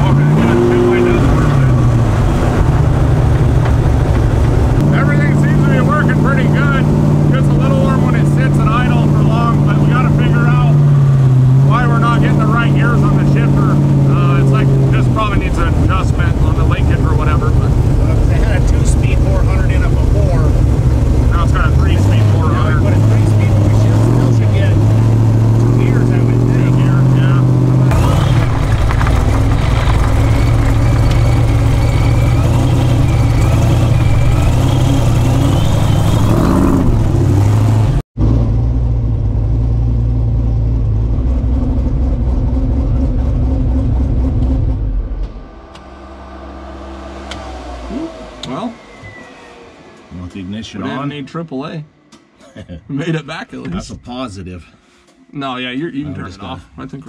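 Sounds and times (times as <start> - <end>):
supercharger whine: 0.0 - 54.6
car engine drone: 0.0 - 57.0.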